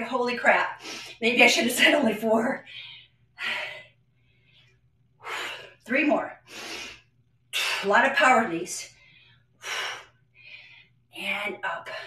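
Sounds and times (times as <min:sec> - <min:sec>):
woman breathing hard: 0:08.9 - 0:11.1.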